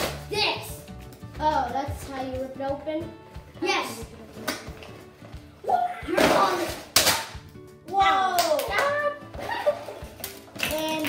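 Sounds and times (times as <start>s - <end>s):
child exclaiming: 5.6s - 6.7s, 7.9s - 9.3s
cardboard snap: 6.2s - 7.4s.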